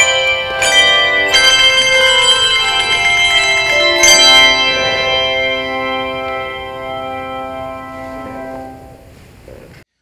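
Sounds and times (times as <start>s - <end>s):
handbell chords ringing: 0.0s - 9.0s.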